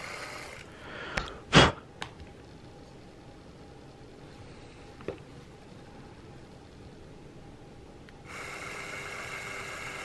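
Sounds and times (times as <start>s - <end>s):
cordless drill whining: 0.0s - 0.7s, 8.3s - 10.0s.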